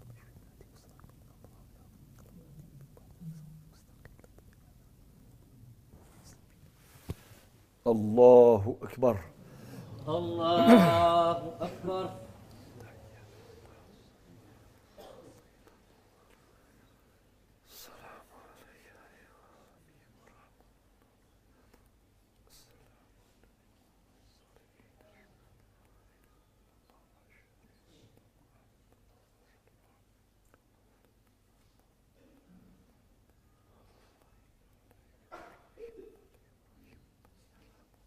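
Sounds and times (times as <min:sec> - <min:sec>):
people whispering: 0:00.0 - 0:07.2, 0:07.9 - 0:38.0
man murmuring: 0:09.9 - 0:13.6.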